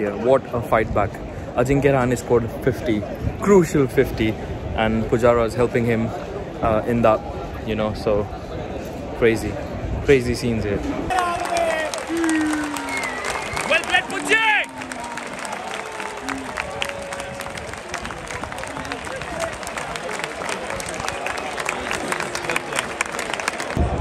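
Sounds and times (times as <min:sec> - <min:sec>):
crowd shouts and whoops: 0:11.1 - 0:19.2
crowd applause: 0:11.1 - 0:24.0.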